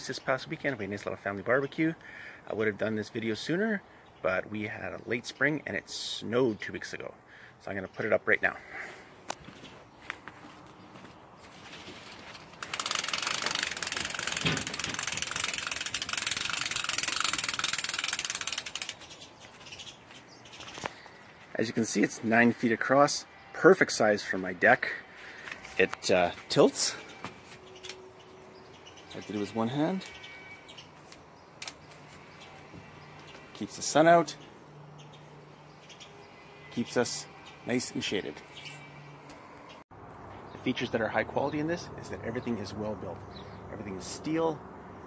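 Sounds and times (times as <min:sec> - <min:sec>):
umbrella crank ratcheting: 0:12.3 - 0:19.2.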